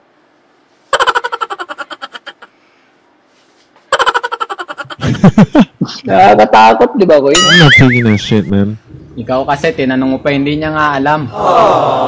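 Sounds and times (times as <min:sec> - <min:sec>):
person laughing: 0:00.9 - 0:02.5, 0:03.9 - 0:06.1, 0:07.5 - 0:08.6.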